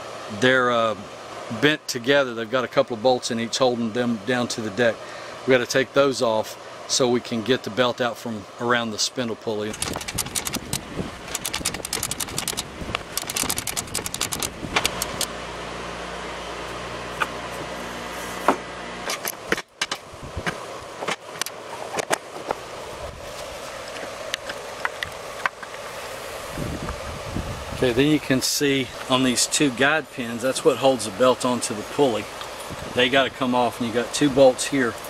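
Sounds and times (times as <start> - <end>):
steady low hum: 0.0 - 35.0
plastic cover clicks and rattles: 9.8 - 15.3.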